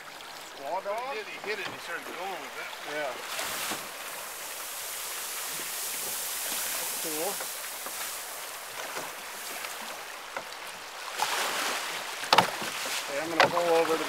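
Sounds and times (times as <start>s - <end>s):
river water rushing: 0.0s - 14.0s.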